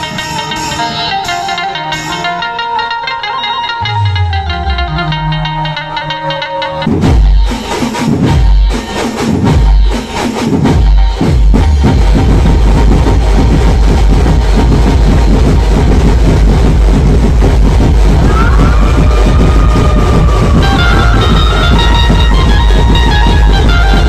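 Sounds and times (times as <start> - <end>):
bass-heavy dance music: 3.8 - 24.0
heavy bass hits: 10.5 - 24.0.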